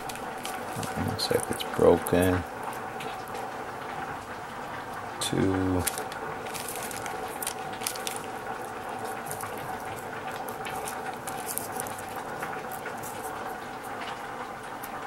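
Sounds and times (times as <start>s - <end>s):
plastic bag crinkling: 0.0s - 3.5s, 5.2s - 15.0s.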